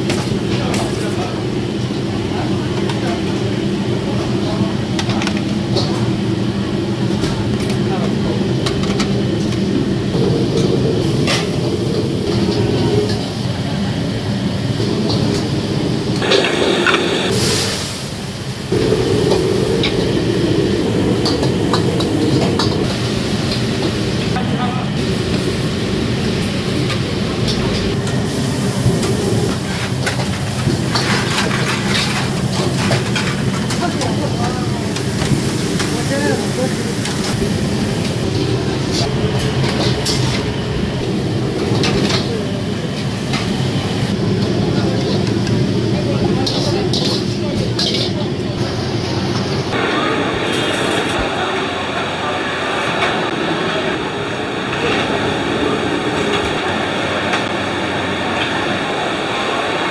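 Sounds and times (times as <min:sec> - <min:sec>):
kitchen extraction running: 0:00.0 - 0:59.9
wok burners rushing: 0:00.0 - 0:59.9.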